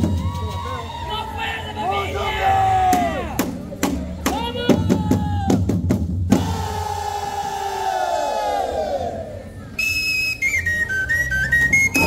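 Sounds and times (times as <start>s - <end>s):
voices shouting: 0.0s - 3.5s, 6.3s - 9.7s
high flute melody: 9.7s - 12.0s.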